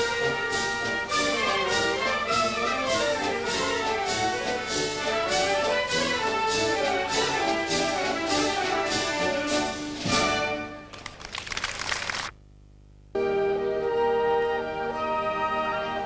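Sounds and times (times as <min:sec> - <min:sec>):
wind band playing: 0:00.0 - 0:10.9, 0:13.2 - 0:16.0
short crackling noise: 0:10.9 - 0:13.1.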